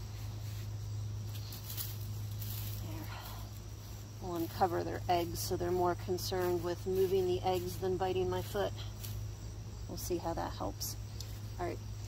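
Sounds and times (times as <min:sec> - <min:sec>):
hand scraping soil and mulch: 0:00.0 - 0:09.4
insects chirping: 0:00.0 - 0:12.0
steady low hum: 0:00.0 - 0:12.0.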